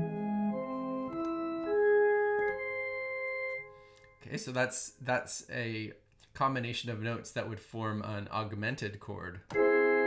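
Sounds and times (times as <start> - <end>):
organ-like keyboard notes rising: 0.0 - 4.3, 9.5 - 10.0.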